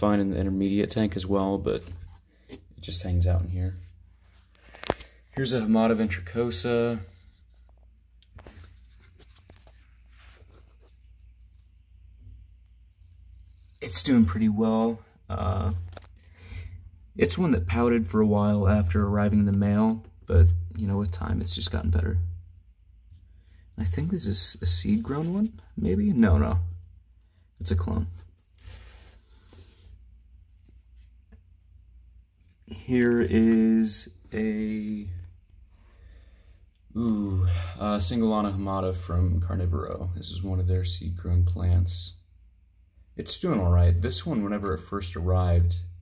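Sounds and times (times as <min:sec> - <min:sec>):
faint rustling of plants: 0:00.0 - 0:22.1, 0:22.7 - 0:38.7.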